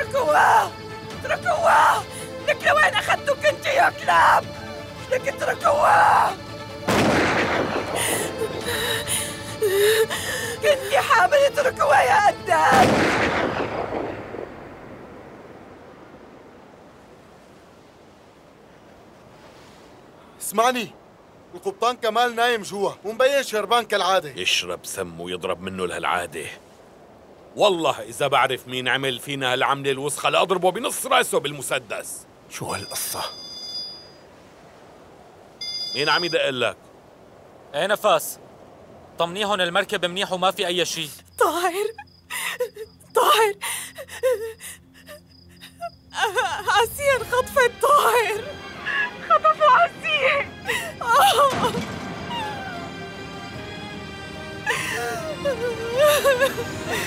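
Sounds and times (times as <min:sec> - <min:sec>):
woman shouting frantically: 0:00.0 - 0:06.4, 0:10.6 - 0:12.9, 0:43.1 - 0:43.7, 0:46.2 - 0:52.9, 0:55.0 - 0:57.0
music: 0:00.0 - 0:12.8, 0:46.1 - 0:57.0
shotgun blasts: 0:06.9 - 0:08.0, 0:12.7 - 0:14.6
mobile phone ringtone: 0:32.7 - 0:34.2, 0:35.6 - 0:36.4.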